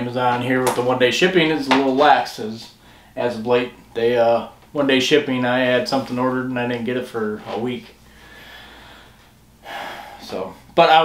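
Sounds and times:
man breathing: 2.8s - 3.2s, 8.0s - 10.4s.

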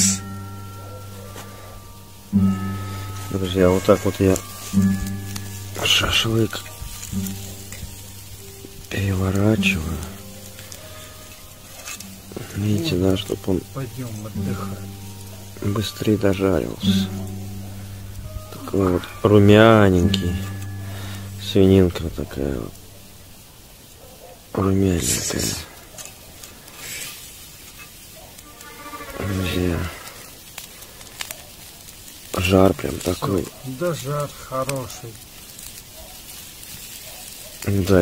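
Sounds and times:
faint crackles: 0.0s - 38.0s
meat sizzling over coals: 0.0s - 38.0s.

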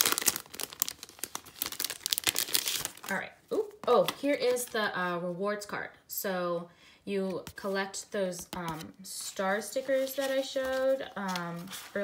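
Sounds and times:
plastic packaging crinkling: 0.0s - 3.3s.

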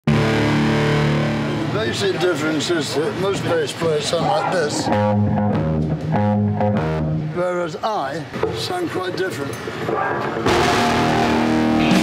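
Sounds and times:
distorted electric bass chord: 0.0s - 1.9s, 4.8s - 7.4s, 10.5s - 12.0s.

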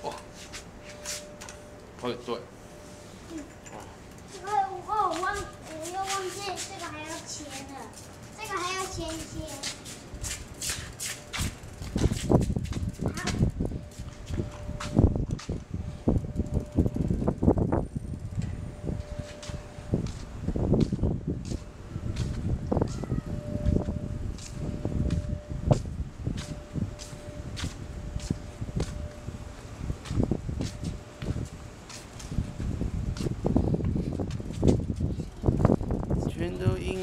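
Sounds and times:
faint steady whine: 0.0s - 37.0s
wind on microphone: 8.9s - 37.0s.

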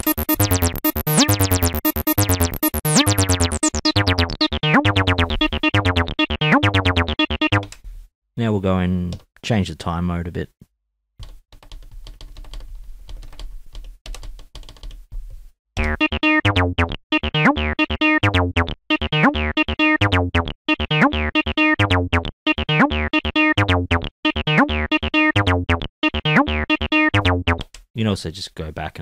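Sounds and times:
synthesizer bass line: 0.0s - 7.7s, 15.8s - 27.6s.

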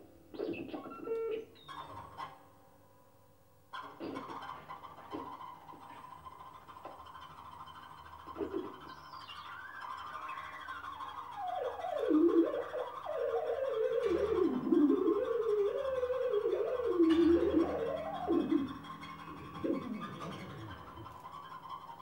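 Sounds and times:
wavering electronic tone gliding: 9.4s - 22.0s.

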